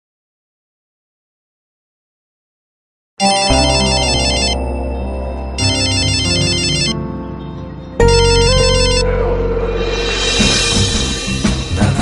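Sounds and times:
phone ringtone: 3.2 - 7.2, 8.0 - 9.1
music: 3.2 - 12.0.

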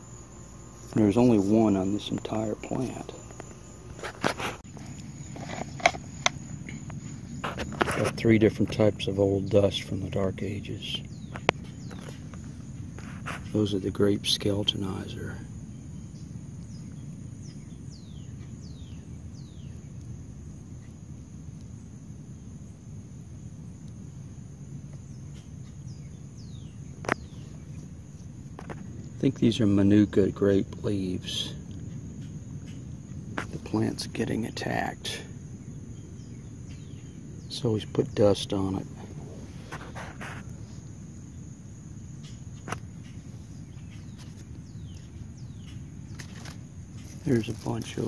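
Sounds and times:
high-pitched insect drone: 0.0 - 21.1
high insect drone: 0.0 - 48.0.

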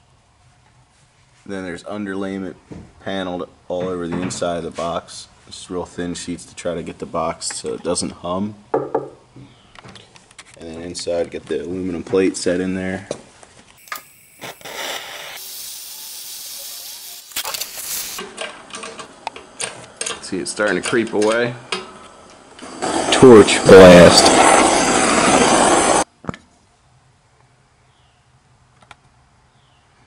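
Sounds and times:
gas and flame hissing: 13.8 - 18.2, 21.7 - 26.1.

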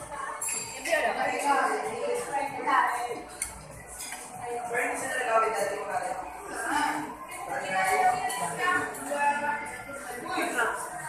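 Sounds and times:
cutlery clinking on ceramic dish: 0.4 - 1.2, 3.4 - 4.3.

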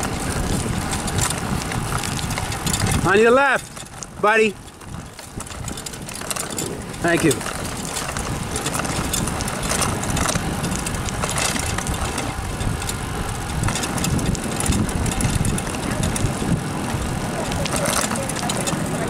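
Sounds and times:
bicycle tyre rumble: 0.0 - 19.0
small clicks and rattles: 0.0 - 19.0
wind on microphone: 0.0 - 19.0.

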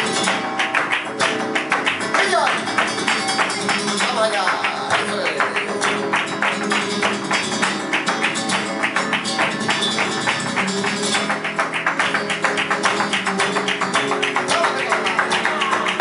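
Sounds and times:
acoustic guitar playing: 0.0 - 16.0
rhythmic handclaps: 0.0 - 16.0.

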